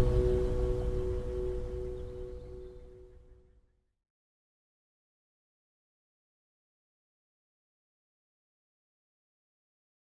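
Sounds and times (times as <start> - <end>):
acoustic guitar chord ringing: 0.0 - 2.6.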